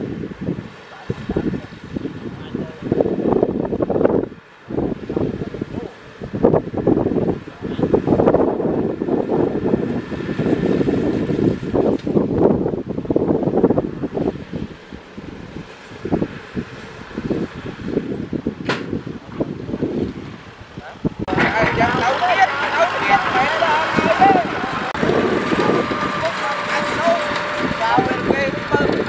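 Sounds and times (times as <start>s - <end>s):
tractor diesel engine running: 21.2s - 29.0s.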